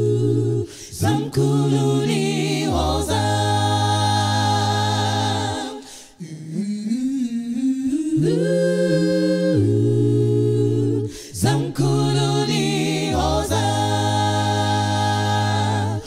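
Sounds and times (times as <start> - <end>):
a cappella group singing harmony: 0.0 - 16.0.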